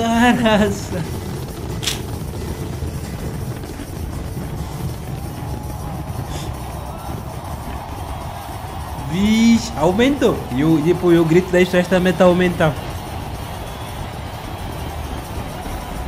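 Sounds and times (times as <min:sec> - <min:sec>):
fireworks rumbling: 0:00.0 - 0:16.0
sharp firework crack: 0:01.1 - 0:02.9.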